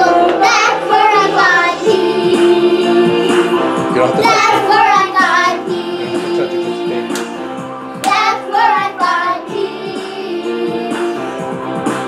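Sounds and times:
children singing: 0:00.0 - 0:07.2, 0:08.0 - 0:11.4
backing music: 0:00.0 - 0:12.0.

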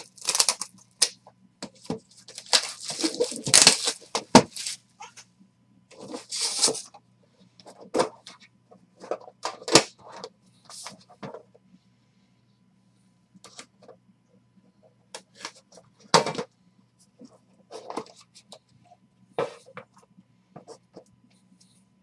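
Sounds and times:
cardboard and plastic packaging rustling: 0:00.0 - 0:05.1, 0:05.9 - 0:07.0.

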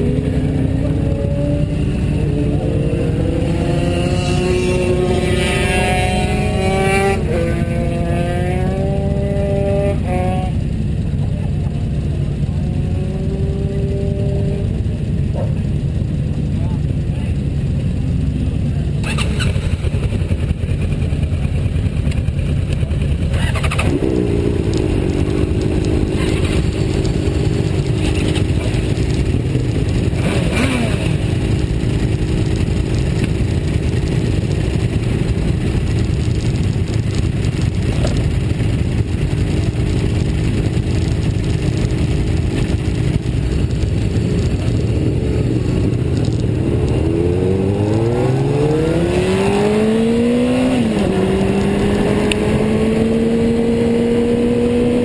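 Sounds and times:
motorcycle engines idling: 0:00.0 - 0:47.3
steady engine tone: 0:00.0 - 0:55.0.

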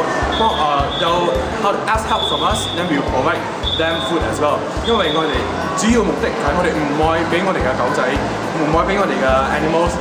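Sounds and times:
man talking: 0:00.3 - 0:10.0.

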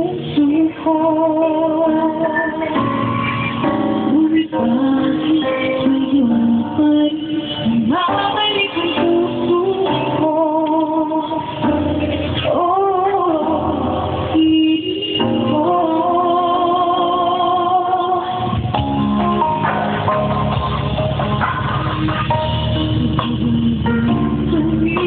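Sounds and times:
woman singing a slow ballad: 0:00.0 - 0:03.0, 0:03.8 - 0:18.6, 0:22.8 - 0:25.0
backing music: 0:00.0 - 0:25.0.

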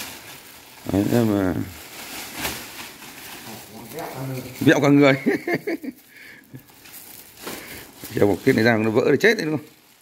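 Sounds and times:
low background noise: 0:00.0 - 0:10.0
man speaking: 0:00.8 - 0:01.8, 0:03.5 - 0:05.4, 0:08.1 - 0:09.7.

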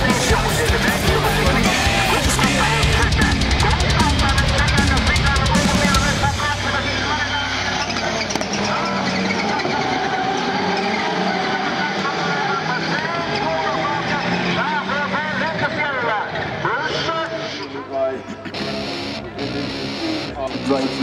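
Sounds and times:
race car engines running hard: 0:00.0 - 0:21.0.

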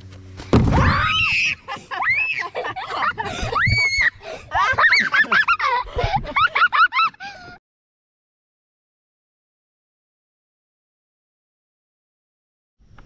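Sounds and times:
heavy low thump: 0:00.4 - 0:01.0
children shrieking: 0:00.7 - 0:05.9
children laughing: 0:00.8 - 0:07.6.

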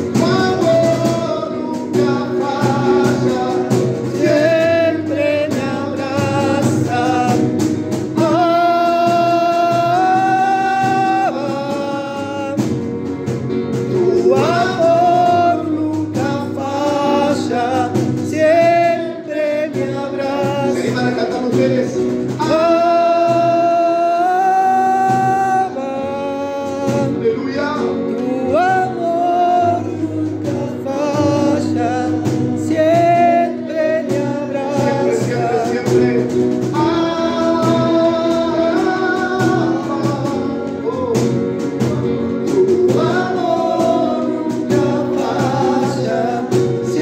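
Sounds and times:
man singing into a microphone: 0:00.0 - 0:13.0, 0:13.8 - 0:47.0
keyboard chords: 0:00.0 - 0:47.0.

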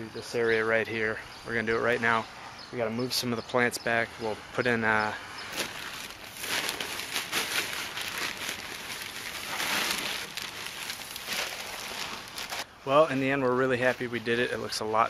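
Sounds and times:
mulch rustling and crackling: 0:05.4 - 0:12.7
plastic bag crinkling: 0:05.5 - 0:12.7.

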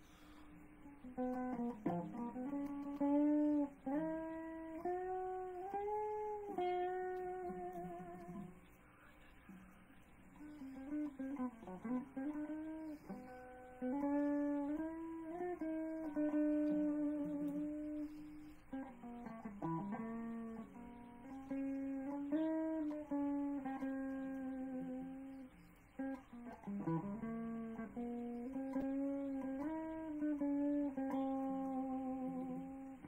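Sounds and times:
guitar note: 0:00.0 - 0:33.0
plucked guitar notes: 0:00.0 - 0:33.0.

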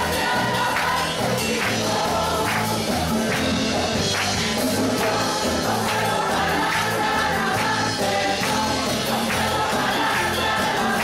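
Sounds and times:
gospel choir with band: 0:00.0 - 0:11.0.

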